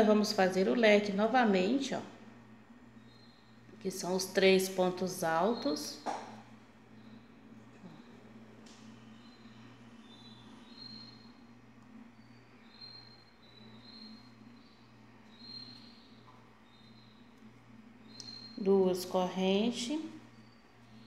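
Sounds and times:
faint pulsing hum: 0.0 - 21.0
faint high chirps: 6.9 - 21.0.

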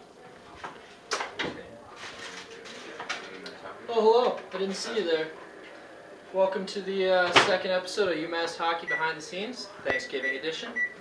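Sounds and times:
low indistinct voices: 0.0 - 11.0.

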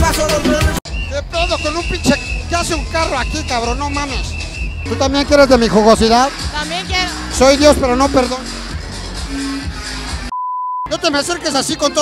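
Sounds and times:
crowd noise: 0.0 - 10.3, 10.9 - 12.0
nightclub music: 1.4 - 10.3
censor bleep: 10.3 - 10.9.

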